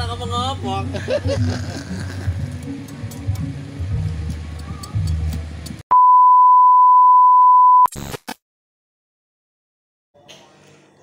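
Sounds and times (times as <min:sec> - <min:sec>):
music: 0:00.0 - 0:05.8.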